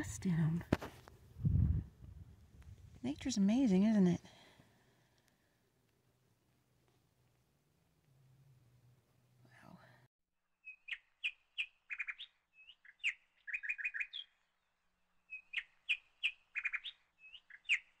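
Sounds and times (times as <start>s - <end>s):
songbird singing: 10.6s - 18.0s.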